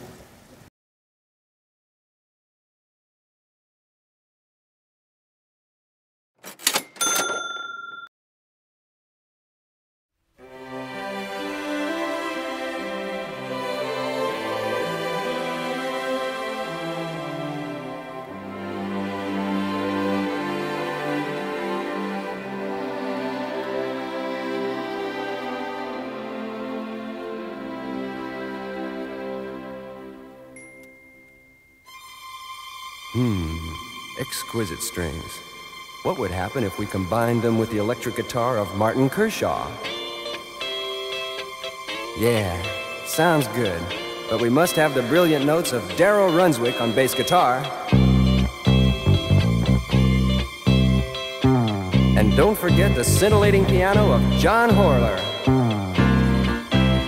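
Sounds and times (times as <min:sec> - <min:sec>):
string section sustained chords: 0:10.4 - 0:30.6, 0:31.9 - 0:57.0.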